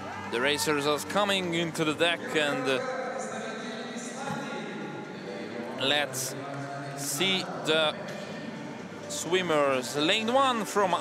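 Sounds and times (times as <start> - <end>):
crowd murmur in a hall: 0.0 - 11.0
man speaking: 5.8 - 8.0.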